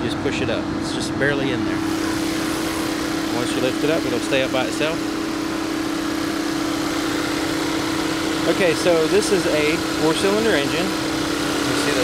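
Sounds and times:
car engine idling: 1.5 - 12.0.

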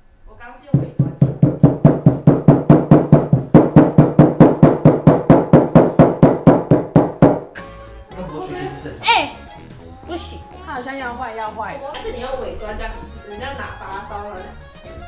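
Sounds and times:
rapid pounding blows: 0.7 - 7.5.

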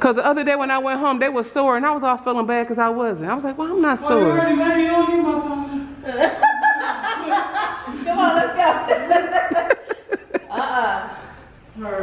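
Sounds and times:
person laughing: 9.3 - 11.0.

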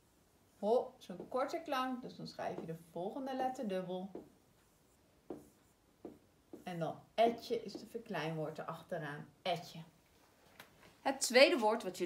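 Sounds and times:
pen rubbing and tapping on screen: 1.1 - 2.9, 4.1 - 8.2.

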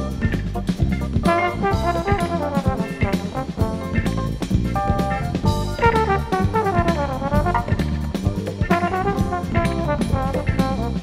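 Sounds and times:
bass: 0.0 - 11.0
drum kit beat: 0.0 - 11.0
trombone-led brass line: 1.2 - 4.1, 5.4 - 11.0.

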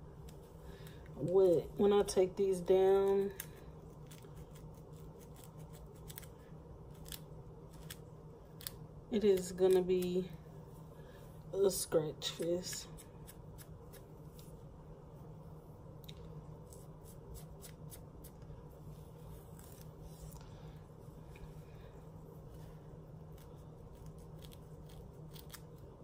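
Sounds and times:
comb scraping scalp: 0.0 - 10.8, 11.6 - 15.4, 16.0 - 26.0.

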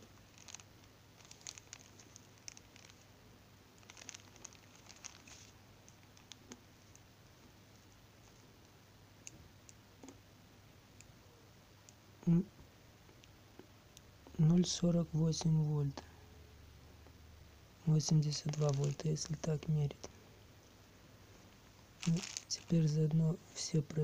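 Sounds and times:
plastic crinkles: 0.0 - 3.1, 3.7 - 7.0, 17.9 - 20.2, 21.9 - 23.0.

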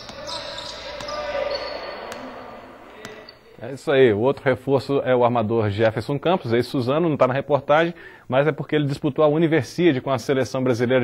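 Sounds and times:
basketball bouncing on court: 0.0 - 3.4
players' voices: 0.0 - 6.7.

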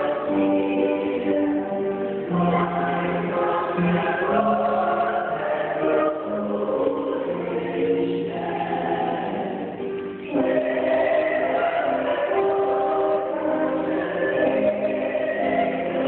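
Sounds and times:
choir singing: 0.0 - 16.0.

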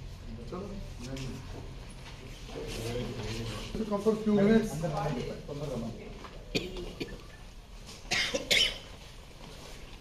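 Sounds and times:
person coughing: 6.5 - 7.3, 8.1 - 8.9.

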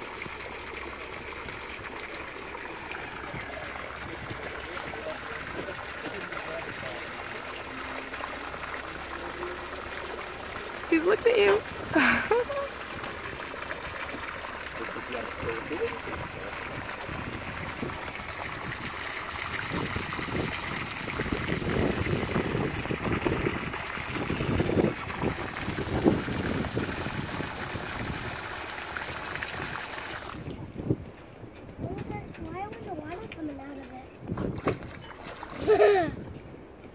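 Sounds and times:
wind and water noise: 0.0 - 36.9
people laughing: 11.9 - 12.8, 35.6 - 36.2.

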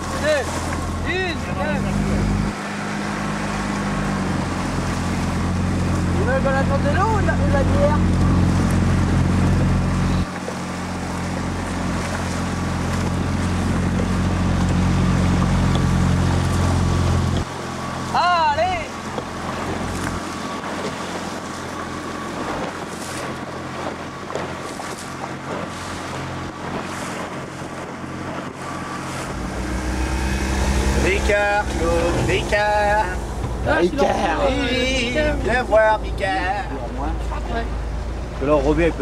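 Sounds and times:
motorboat engine running: 0.0 - 39.0
water noise: 0.0 - 39.0
wind: 0.0 - 39.0.

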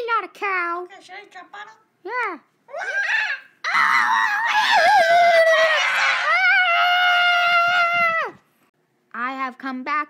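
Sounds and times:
child screaming: 2.7 - 8.4.

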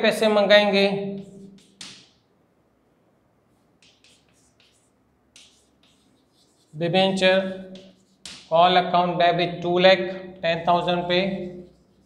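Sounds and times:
chalk scratching on blackboard: 1.2 - 2.2, 3.5 - 8.8, 10.8 - 12.0.

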